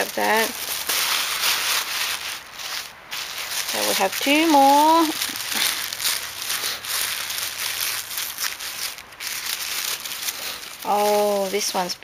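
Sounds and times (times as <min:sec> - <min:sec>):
lace crinkling and rustling: 0:00.0 - 0:12.0.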